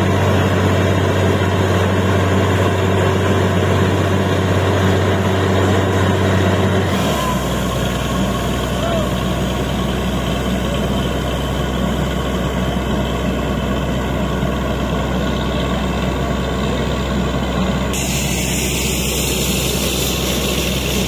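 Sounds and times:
drilling rig engine running: 0:00.0 - 0:21.0
air-flush spray: 0:17.9 - 0:21.0.

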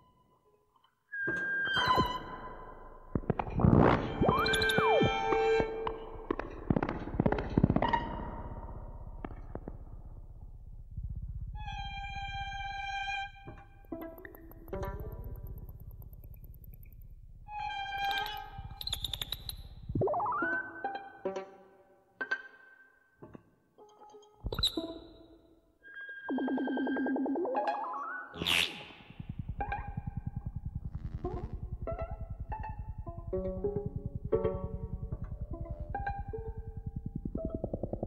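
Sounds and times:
low rumble: 0:05.6 - 0:18.8, 0:29.0 - 0:38.0
sharp clicks: 0:13.8 - 0:19.8
tone gliding upward: 0:29.0 - 0:38.0.

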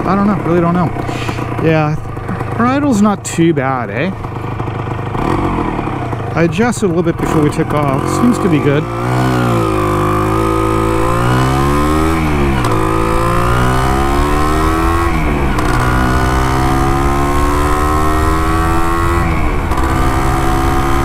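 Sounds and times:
two-stroke motorcycle engine accelerating: 0:00.0 - 0:21.0.

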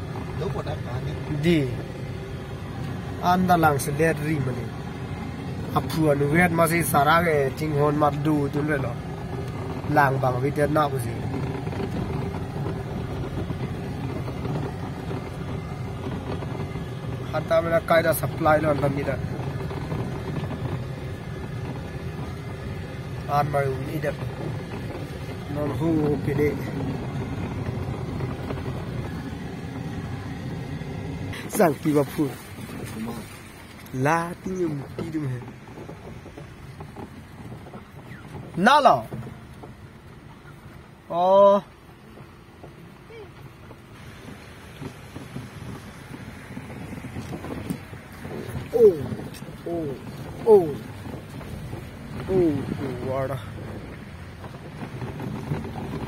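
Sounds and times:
car engine hum: 0:00.0 - 0:56.0
tyres rumbling on gravel: 0:00.0 - 0:56.0.

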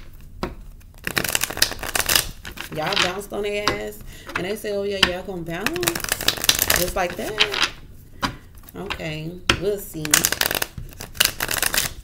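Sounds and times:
cards being shuffled: 0:00.0 - 0:03.2, 0:05.6 - 0:08.9, 0:10.0 - 0:12.0.

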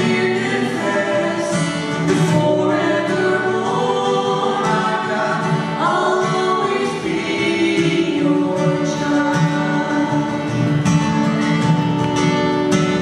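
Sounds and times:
woman and man singing: 0:00.0 - 0:10.6
strummed acoustic guitar: 0:00.0 - 0:13.0.

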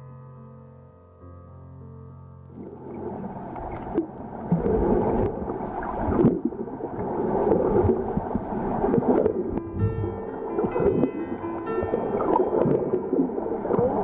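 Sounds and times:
muffled water gurgling underwater: 0:02.5 - 0:14.0
steady musical notes: 0:08.9 - 0:14.0.

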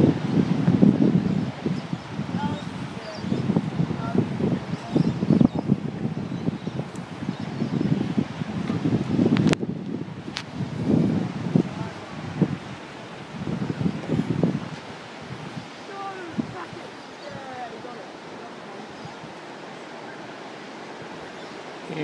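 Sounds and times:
wind gusting over microphone: 0:00.0 - 0:22.0.

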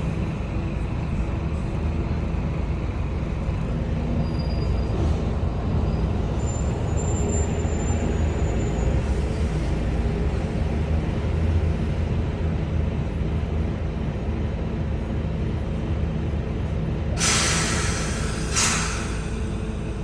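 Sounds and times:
bus diesel engine running: 0:00.0 - 0:20.0.

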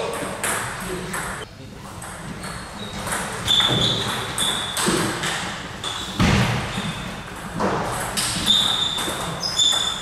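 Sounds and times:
table tennis balls bouncing: 0:00.0 - 0:10.0.

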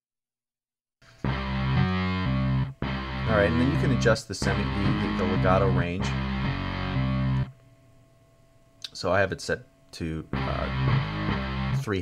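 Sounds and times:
distorted electric guitar power chord: 0:01.1 - 0:07.6, 0:10.3 - 0:12.0.

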